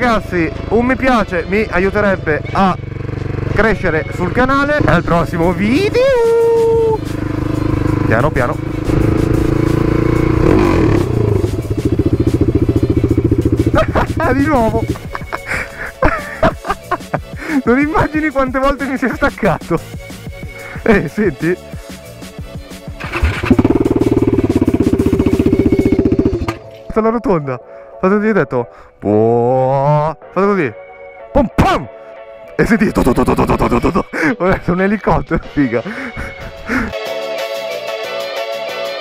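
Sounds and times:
motorcycle engine idling: 0.0 - 15.5, 23.0 - 26.7.

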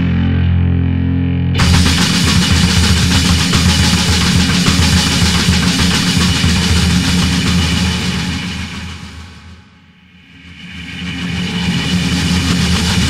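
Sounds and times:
loud rock music: 0.0 - 9.8, 11.2 - 13.0.

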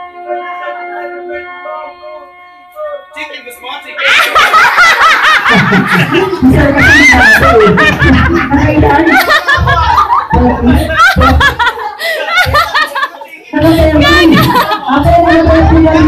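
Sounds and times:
people laughing: 3.9 - 16.0.

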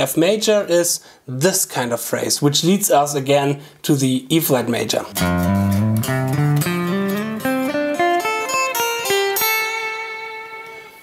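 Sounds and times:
electric guitar lead phrase: 5.1 - 11.0.

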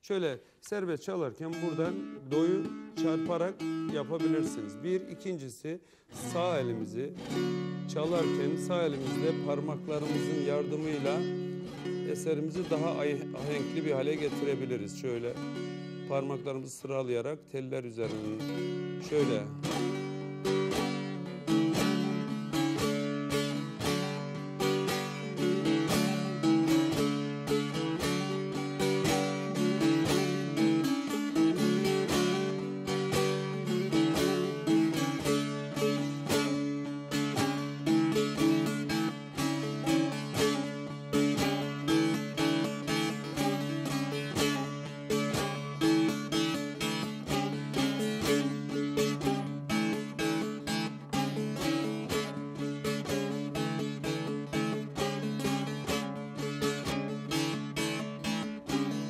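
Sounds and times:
long-necked lute strummed folk melody: 0.0 - 59.0.

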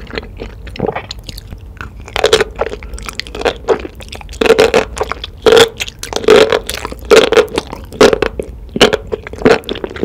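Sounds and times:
wet crunchy chewing: 0.0 - 10.0.

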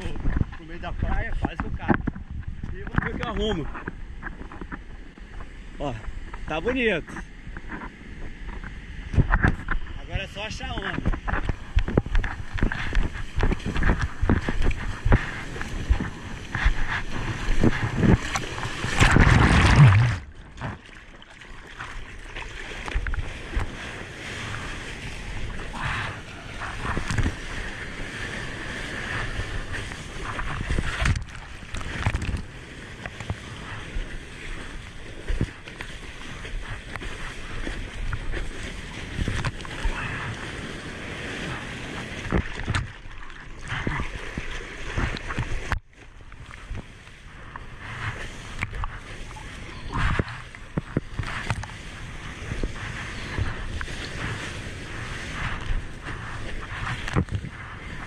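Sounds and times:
seawater sloshing and splashing: 7.5 - 58.0
loud rush of water: 15.9 - 20.8.

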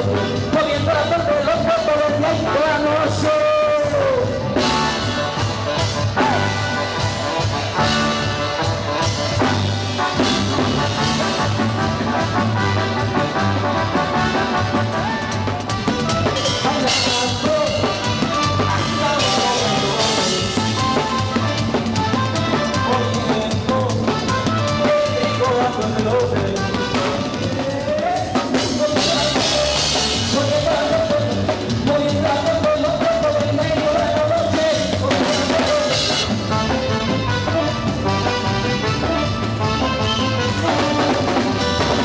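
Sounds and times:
bass line: 0.0 - 42.0
drum kit playing: 0.0 - 42.0
keyboard melody: 0.0 - 42.0
saxophone: 4.5 - 27.9, 34.8 - 42.0.

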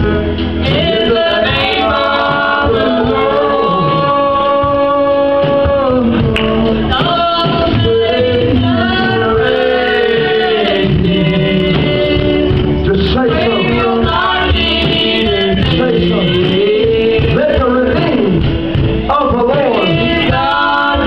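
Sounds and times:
choir singing gospel: 0.0 - 21.0.

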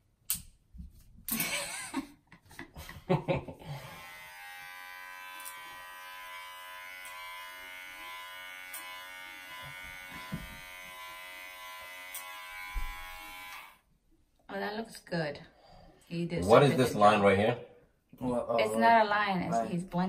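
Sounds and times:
person laughing: 1.3 - 3.9
electric hair clippers buzzing: 3.7 - 13.8.

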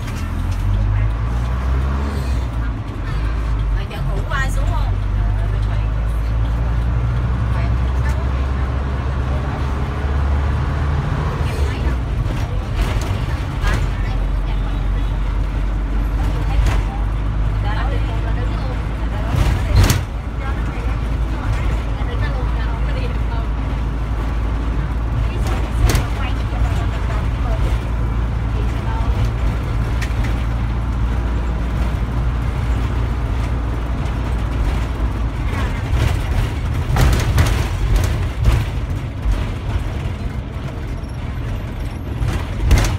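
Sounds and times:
bus engine rumbling: 0.0 - 42.9
sharp knocks and rattles: 23.7 - 42.9.

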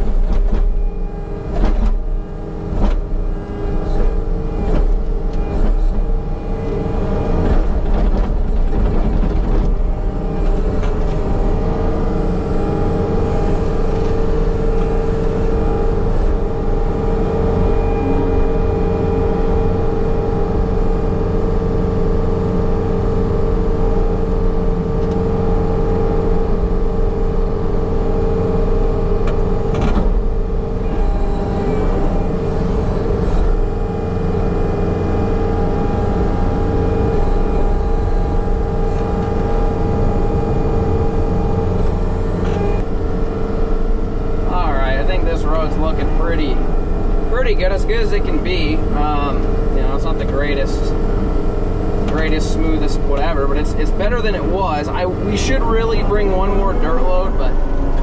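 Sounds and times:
diesel engine under load: 0.0 - 58.0
steady high tone: 10.1 - 20.5, 33.9 - 58.0.

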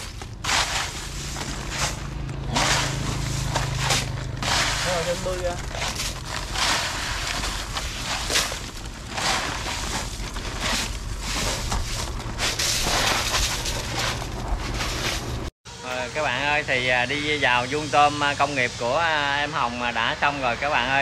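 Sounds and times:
crushed ice pouring from bags: 0.0 - 15.4.

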